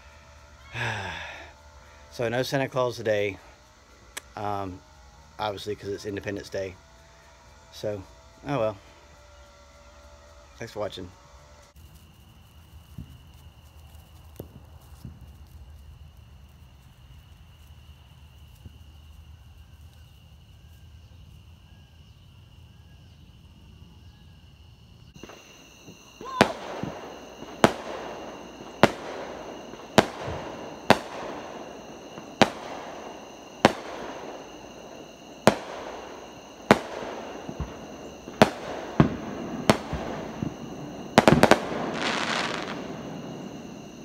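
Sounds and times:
rattle of fireworks cracks: 0.0s - 9.6s, 10.6s - 20.6s, 25.2s - 44.0s
crickets chirring: 0.0s - 44.0s
fireworks bangs with echo: 25.2s - 44.0s.

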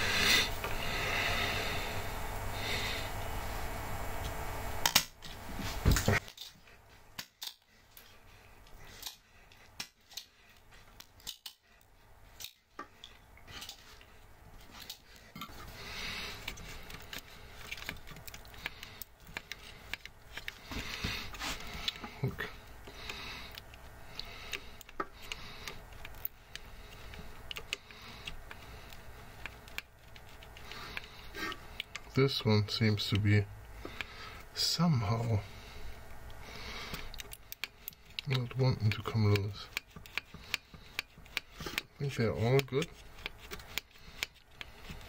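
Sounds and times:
tools clicking on metal: 11.0s - 11.6s.

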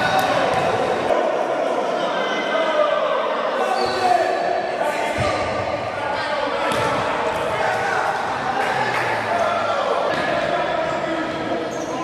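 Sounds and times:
echoing voices: 0.0s - 12.0s.

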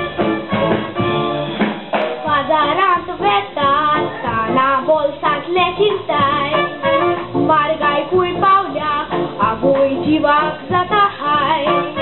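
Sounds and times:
guitar accompaniment: 0.0s - 12.0s
boy singing into a microphone: 2.2s - 12.0s.

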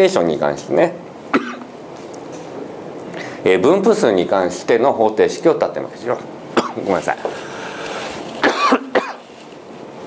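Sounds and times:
room hiss: 0.0s - 10.0s
person coughing: 1.3s - 1.7s, 6.6s - 6.8s, 8.4s - 9.2s.

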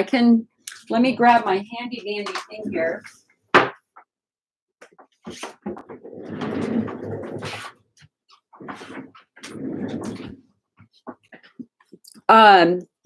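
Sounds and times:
rustling and rummaging: 4.9s - 11.9s.

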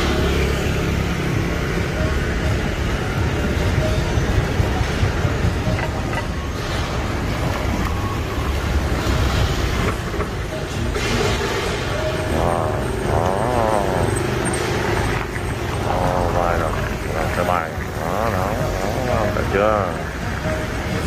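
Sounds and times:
city traffic rumble: 0.0s - 21.0s
steady drone: 0.0s - 21.0s
warbling tone: 10.0s - 21.0s.

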